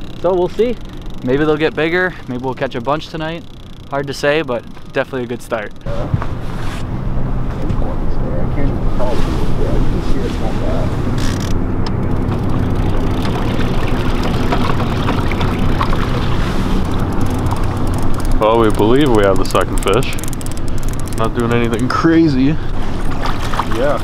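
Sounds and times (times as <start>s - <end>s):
boat motor droning: 0.0s - 24.0s.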